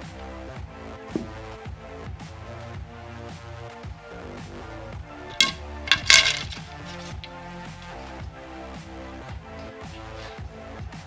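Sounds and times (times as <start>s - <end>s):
arrow shafts clattering on scale: 5.3s - 8.0s.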